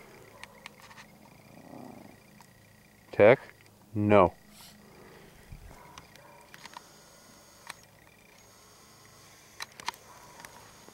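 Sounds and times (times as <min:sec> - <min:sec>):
small dog growling: 0:01.4 - 0:02.2.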